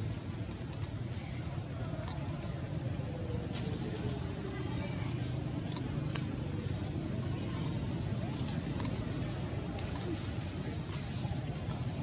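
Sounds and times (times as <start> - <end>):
low rumble of traffic: 0.0 - 12.0
faint indistinct voices: 0.5 - 12.0.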